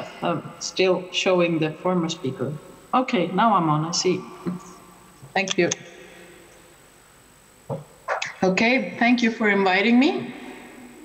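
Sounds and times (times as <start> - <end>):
person speaking: 0.0 - 5.8
faint background hiss: 0.0 - 11.0.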